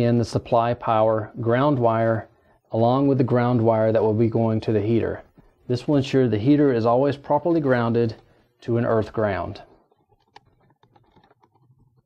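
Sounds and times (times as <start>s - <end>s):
small clicks of wiring work: 9.8s - 12.0s.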